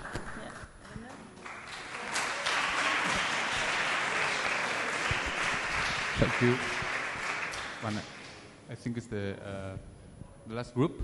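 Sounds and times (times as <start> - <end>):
audience clapping: 0.0 - 8.6.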